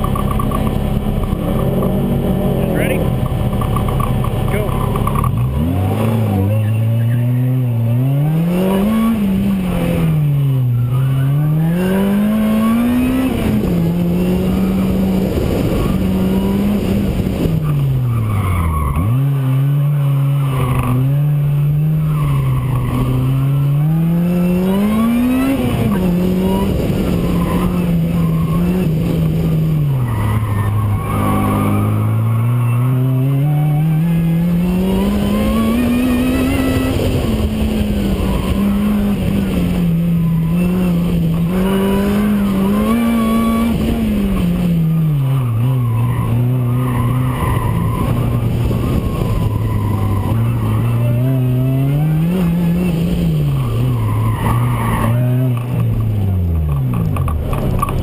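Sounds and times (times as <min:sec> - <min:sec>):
car engine revving: 0:00.0 - 0:58.0
supercharger whine: 0:00.0 - 0:58.0
tires squealing: 0:00.0 - 0:58.0.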